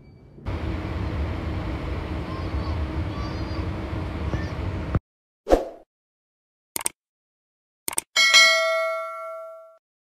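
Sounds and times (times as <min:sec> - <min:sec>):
notification bell ding: 0:08.2 - 0:09.8.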